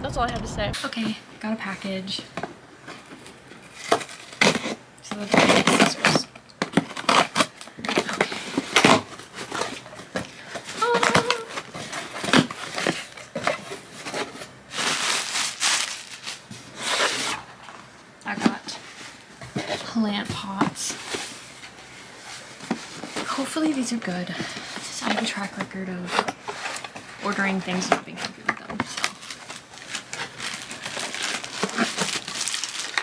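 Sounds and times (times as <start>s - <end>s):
packing tape tearing: 3.2s - 10.0s, 10.6s - 17.4s, 28.8s - 33.0s
paper packing crinkling: 3.2s - 17.4s, 26.4s - 33.0s.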